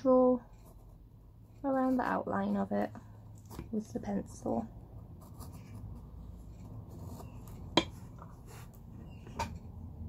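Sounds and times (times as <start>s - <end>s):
pencil scratching: 5.0s - 8.9s.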